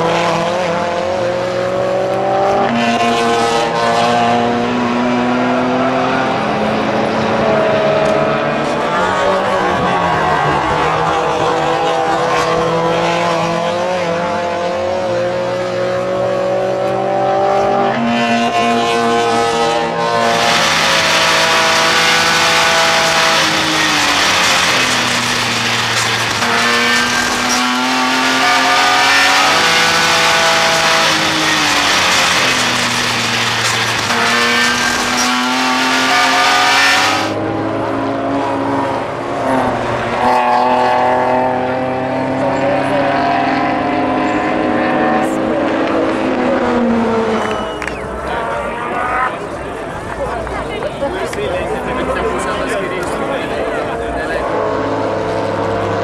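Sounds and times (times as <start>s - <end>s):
car engines revving: 0.0s - 56.0s.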